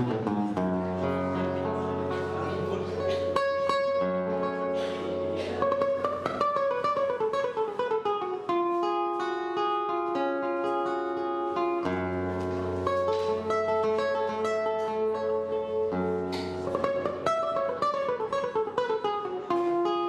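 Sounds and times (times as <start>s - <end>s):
fingerstyle classical guitar: 0.0s - 20.0s.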